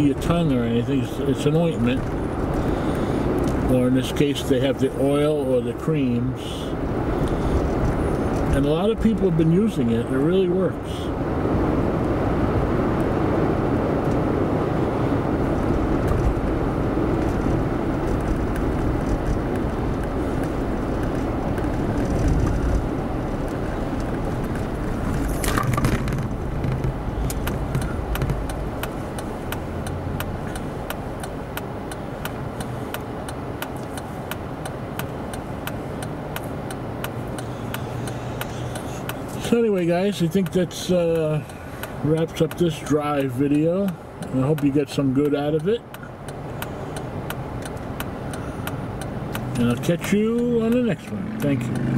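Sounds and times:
road and engine noise in car: 0.0s - 51.9s
regular ticking: 25.8s - 51.9s.

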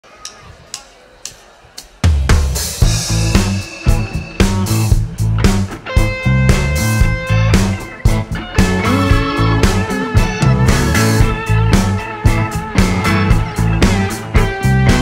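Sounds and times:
band playing drums bass and guitar: 2.0s - 15.0s.

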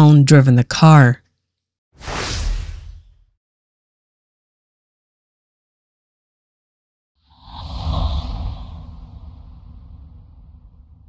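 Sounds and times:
whoosh with deep rumble: 7.3s - 11.0s.

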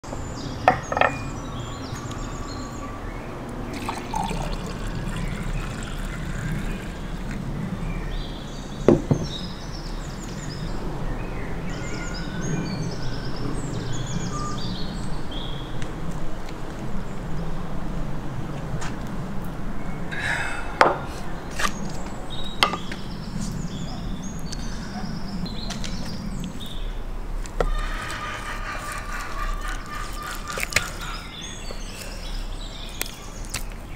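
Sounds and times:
jug and glass knocking on table: 0.7s - 1.2s, 8.9s - 9.4s
wine pouring into a glass: 3.7s - 7.6s.

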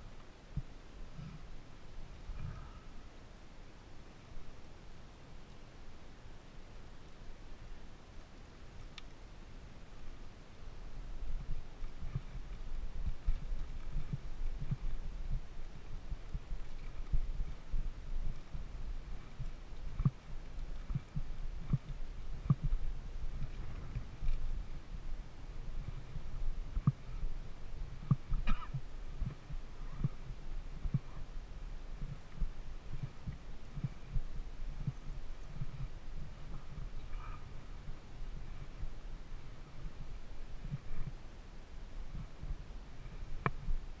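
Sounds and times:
faint steady hiss: 0.0s - 44.0s
wind buffeting microphone: 11.0s - 44.0s.

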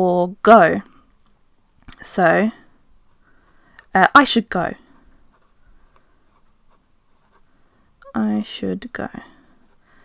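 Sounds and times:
pen scratching on paper: 4.8s - 7.5s.

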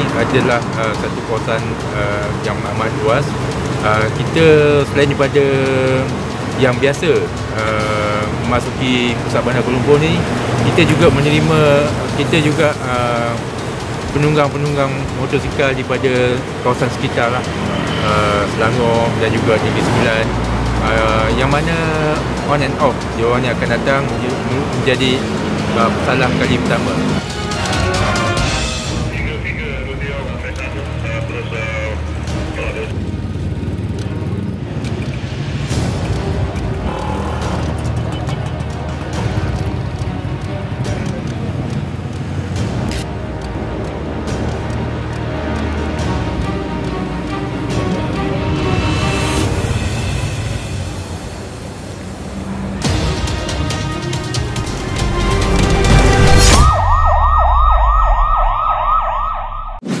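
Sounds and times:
motorcycle and car engines idling: 0.0s - 26.7s, 29.4s - 48.2s
background music: 0.0s - 60.0s
electronic siren yelping: 56.0s - 59.9s.

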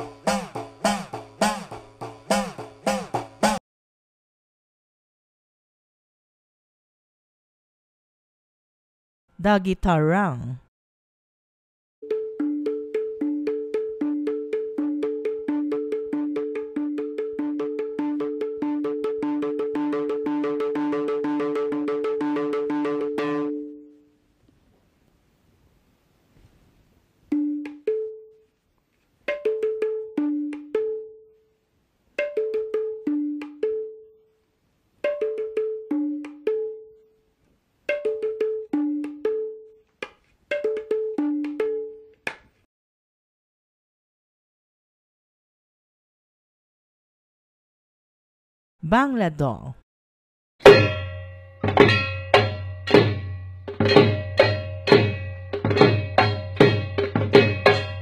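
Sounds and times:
tuned hand drums played: 12.1s - 23.6s, 37.9s - 39.5s, 40.5s - 41.8s, 50.6s - 58.0s
tuned hand drums struck: 50.6s - 58.0s.

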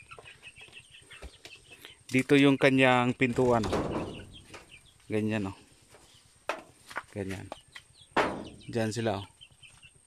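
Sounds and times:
chicks peeping and clucking: 0.0s - 10.0s.

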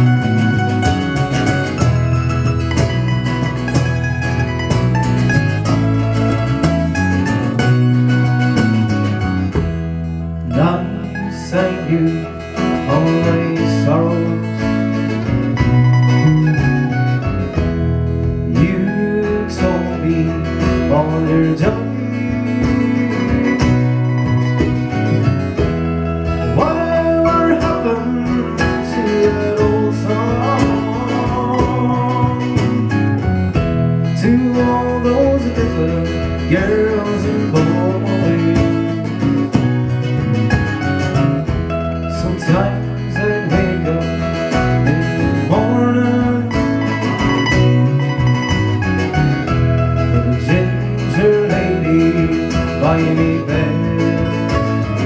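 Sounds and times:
acoustic guitar: 0.0s - 55.0s
electric bass: 0.0s - 55.0s
mandolin: 0.0s - 55.0s.

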